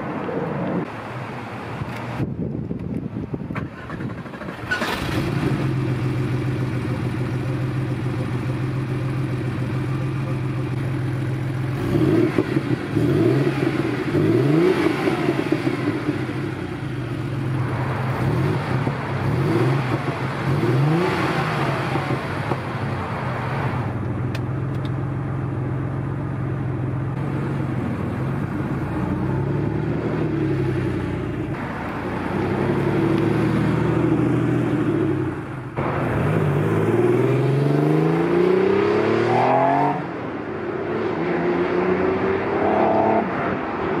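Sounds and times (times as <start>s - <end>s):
turbocharged car engine revving: 8.0s - 22.7s, 29.0s - 43.4s.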